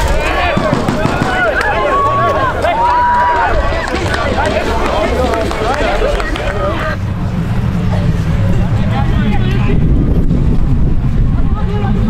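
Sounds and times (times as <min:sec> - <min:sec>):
distant shouting voices: 0:00.0 - 0:09.8
wind rumbling on microphone: 0:00.0 - 0:12.0.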